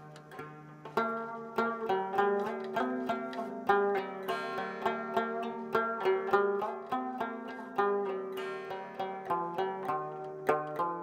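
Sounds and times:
plucked lute melody: 0.0s - 11.0s
sympathetic strings drone: 0.0s - 11.0s.

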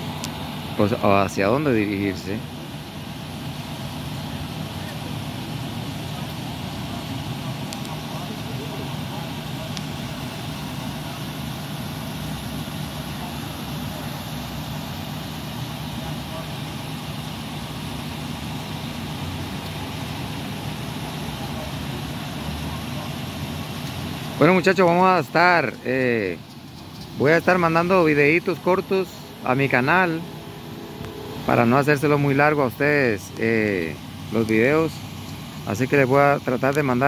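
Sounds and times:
vehicle engine idling: 0.0s - 37.0s.

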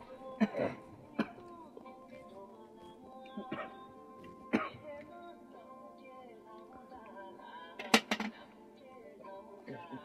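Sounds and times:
song playing in background: 0.0s - 10.0s.

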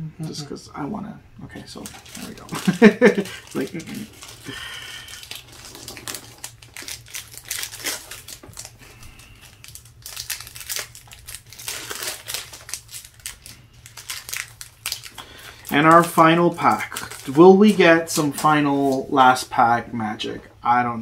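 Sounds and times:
foil wrapper tearing: 1.6s - 19.1s
foil wrapper crinkling: 1.6s - 19.4s.

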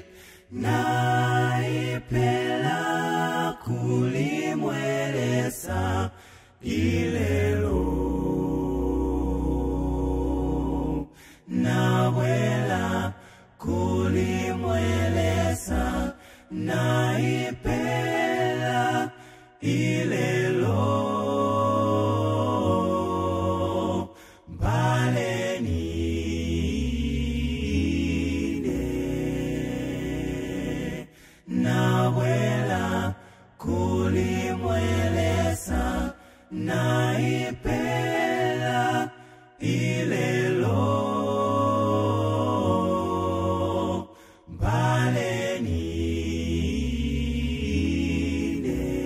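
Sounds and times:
male vocal group singing harmony: 0.0s - 49.0s.

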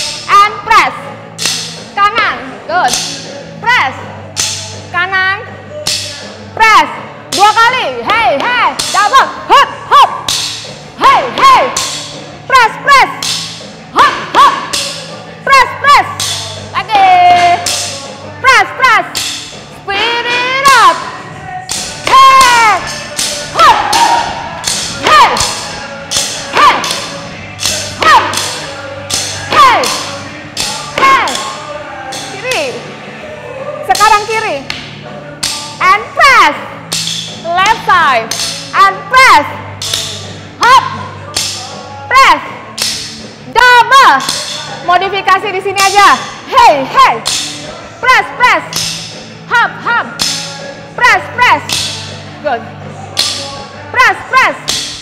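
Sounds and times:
upbeat workout music: 0.0s - 55.0s
shouted calls: 19.9s - 34.4s.

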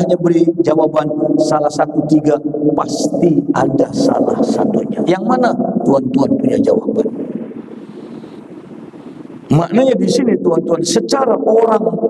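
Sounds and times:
large hall room noise: 0.0s - 12.0s.

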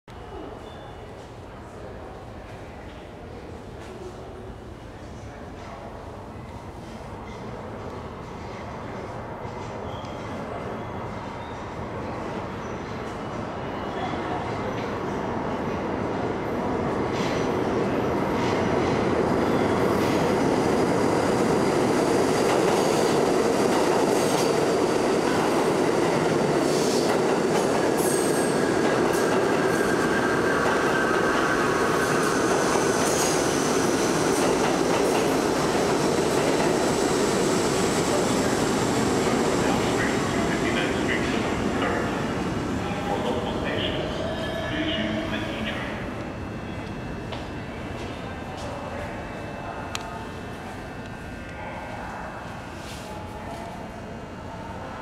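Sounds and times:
subway train rumbling past: 0.2s - 55.0s.

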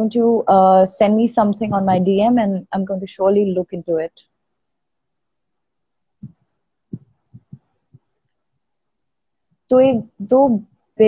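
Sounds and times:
soft low thumps of mic handling: 1.5s - 2.4s, 6.2s - 8.2s, 9.7s - 10.2s.

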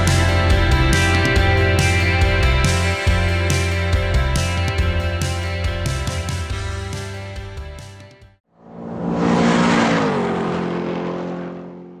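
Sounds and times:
car engine passing by: 8.6s - 12.0s.

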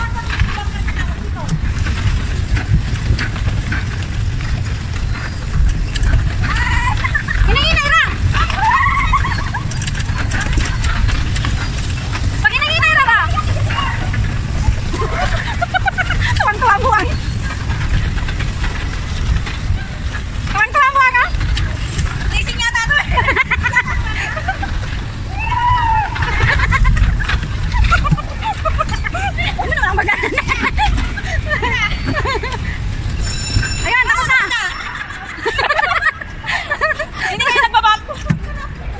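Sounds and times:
bumper car rumbling: 0.0s - 38.9s
thin high whine: 33.1s - 35.4s.

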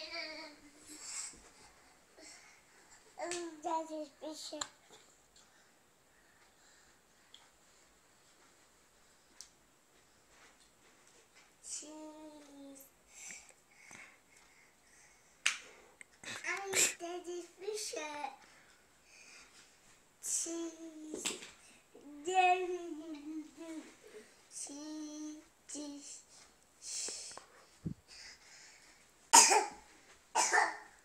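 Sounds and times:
young child's voice: 3.2s - 4.8s, 16.3s - 18.4s, 24.6s - 26.2s
young child coughing: 29.3s - 29.8s, 30.4s - 30.9s.

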